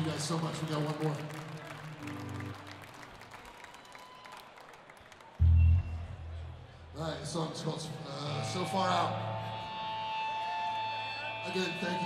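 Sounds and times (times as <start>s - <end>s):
crowd noise: 0.0s - 12.0s
electric guitar through amplifiers: 5.4s - 6.6s.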